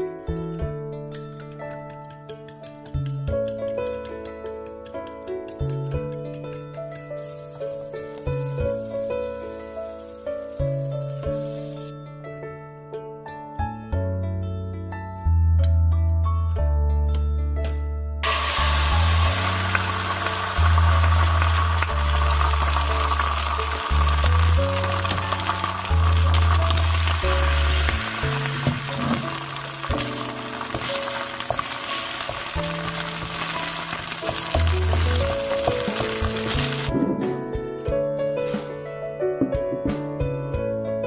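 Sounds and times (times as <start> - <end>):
egg sizzling in a pan: 7.1 - 11.9, 18.2 - 36.9.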